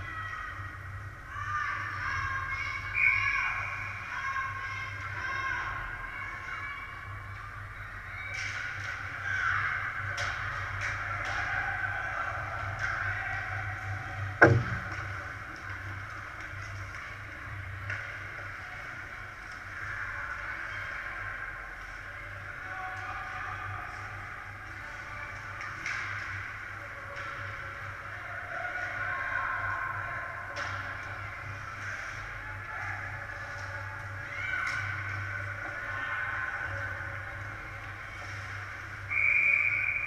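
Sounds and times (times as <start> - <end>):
distant shouts: 0.0 - 7.1
steady low hum: 13.8 - 19.8
loud bang: 14.4 - 15.1.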